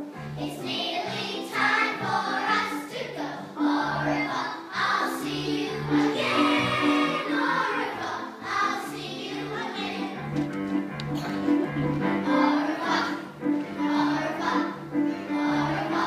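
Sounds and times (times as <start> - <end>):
children singing together: 0.4 - 10.4, 12.1 - 16.0
instrumental accompaniment with bass: 4.8 - 16.0.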